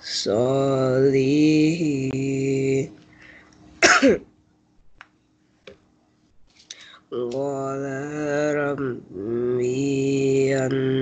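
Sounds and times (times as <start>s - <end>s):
man chanting recitation: 0.0s - 3.0s, 7.1s - 11.0s.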